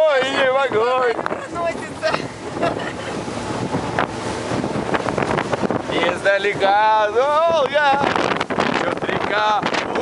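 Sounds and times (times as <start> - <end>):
water rushing past boat: 0.0 - 10.0
wind buffeting microphone: 0.0 - 10.0.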